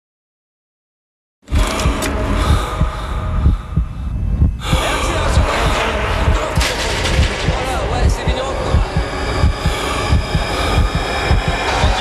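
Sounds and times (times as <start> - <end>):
dramatic music: 1.4 - 12.0
low pounding beat: 1.5 - 12.0
hard breathing: 1.8 - 7.6, 8.7 - 12.0.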